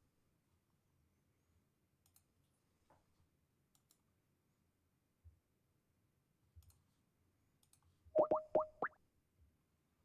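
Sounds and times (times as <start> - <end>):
computer mouse clicks: 2.0 - 2.3, 3.7 - 4.1, 6.6 - 6.9, 7.6 - 7.9.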